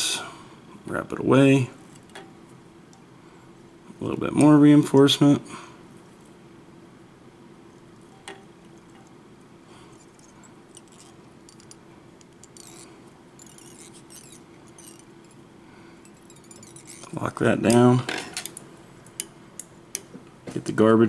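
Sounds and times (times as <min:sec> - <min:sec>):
steady low hum: 0:00.0 - 0:21.0
thread scratching on fly hook: 0:09.9 - 0:17.5.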